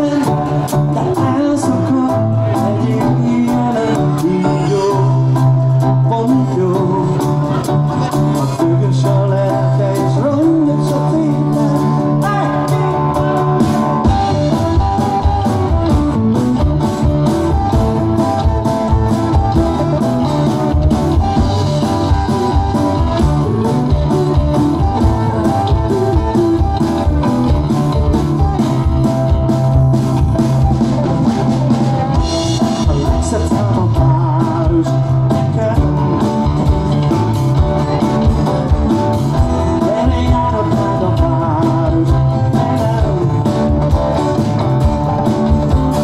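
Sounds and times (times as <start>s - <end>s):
drum kit steady beat: 0.0s - 46.0s
strummed acoustic-electric guitar: 0.0s - 46.0s.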